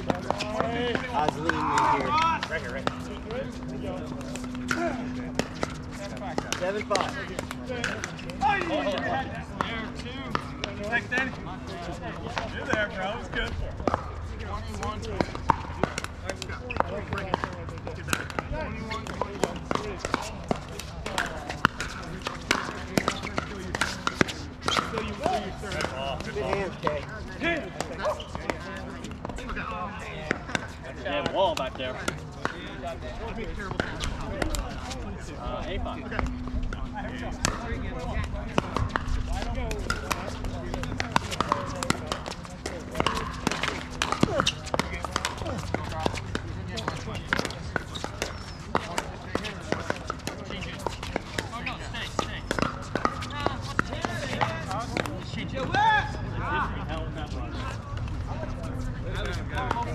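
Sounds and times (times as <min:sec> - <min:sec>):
voices of players: 0:00.0 - 0:59.9.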